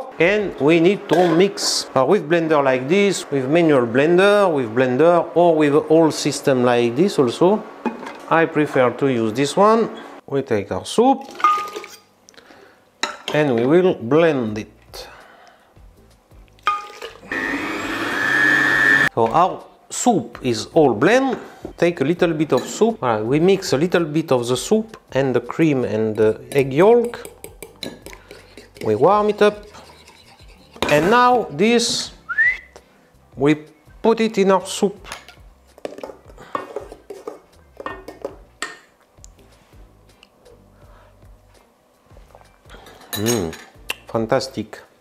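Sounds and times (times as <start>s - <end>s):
blender motor running: 17.2s - 19.1s
spoon clinking against metal bowl: 26.5s - 31.0s
metal spoon scraping ceramic bowl: 26.5s - 31.2s.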